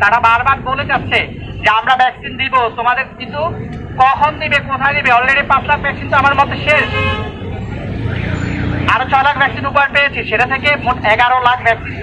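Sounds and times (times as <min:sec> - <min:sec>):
low traffic rumble: 0:00.0 - 0:12.0
vehicle horn toot: 0:06.8 - 0:07.4.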